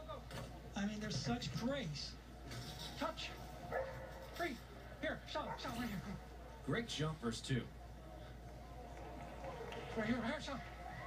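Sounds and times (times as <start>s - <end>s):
dog barking: 3.7s - 4.2s, 5.4s - 5.8s.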